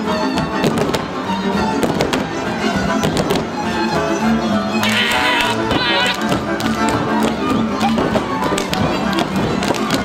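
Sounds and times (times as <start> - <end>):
string band playing folk dance music: 0.0 - 10.0.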